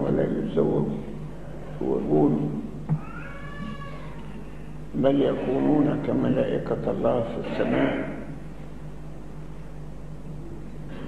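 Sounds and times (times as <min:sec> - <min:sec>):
low electrical hum: 0:00.0 - 0:11.0
cat meowing: 0:03.0 - 0:04.4.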